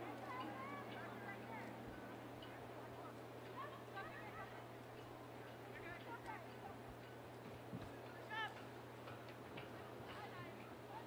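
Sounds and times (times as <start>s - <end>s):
faint ticks from play: 0.0s - 11.0s.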